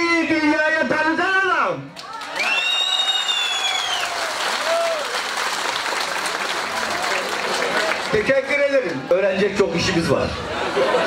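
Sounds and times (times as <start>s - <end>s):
crowd applauding: 2.0s - 9.1s.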